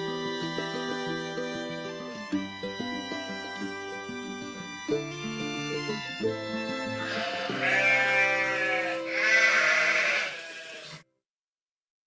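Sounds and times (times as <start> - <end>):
folk-style music: 0.0 - 10.3
sheep bleating: 6.9 - 11.0.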